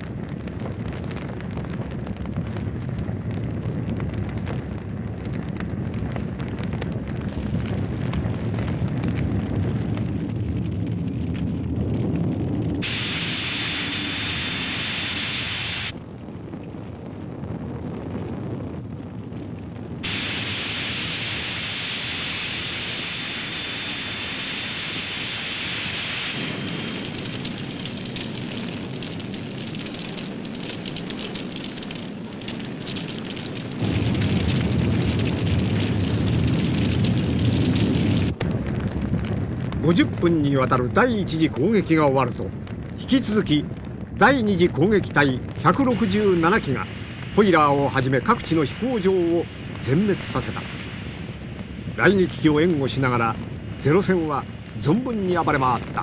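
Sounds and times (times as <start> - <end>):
fire rumbling and crackling: 0.0 - 56.0
loud high hissing: 12.8 - 16.0, 20.0 - 27.4, 45.5 - 56.0.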